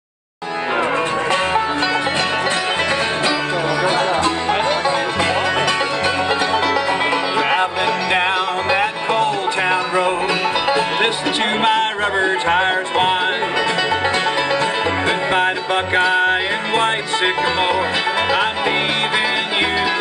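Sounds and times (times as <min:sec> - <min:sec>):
bluegrass string band playing: 0:00.4 - 0:20.0.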